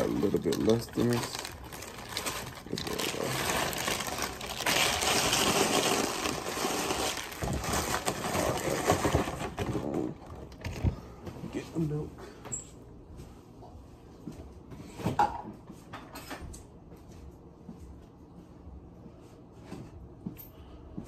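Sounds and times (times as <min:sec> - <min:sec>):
dry cereal pouring into bowl: 0:00.0 - 0:09.0
plastic bag crinkling: 0:00.0 - 0:10.8.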